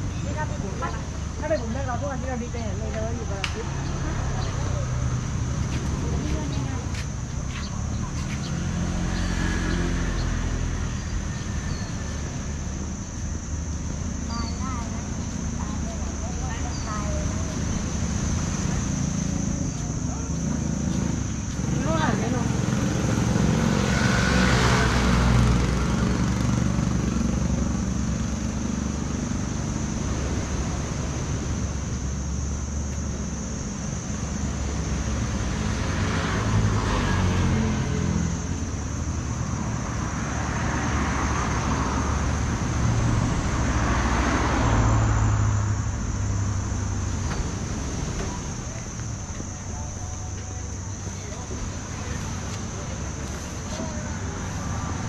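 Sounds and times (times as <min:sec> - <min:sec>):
low engine rumble: 0:00.0 - 0:55.0
vehicles passing by: 0:00.0 - 0:55.0.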